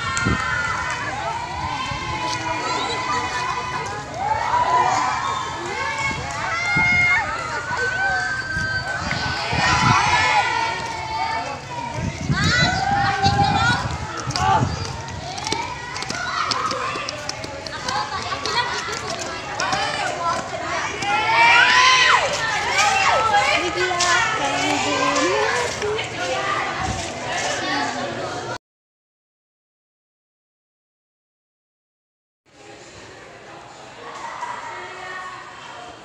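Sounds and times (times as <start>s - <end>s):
teenagers chattering: 0.0s - 28.6s, 32.6s - 36.0s.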